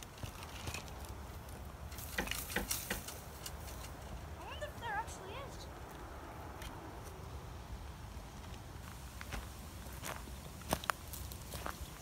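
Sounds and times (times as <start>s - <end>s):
footsteps crunching dry grass: 8.3s - 12.0s.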